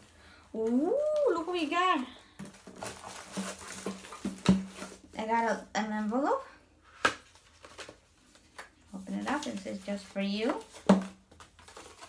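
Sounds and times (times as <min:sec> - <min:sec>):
paper and card rustling: 0:00.7 - 0:05.6, 0:06.9 - 0:12.0.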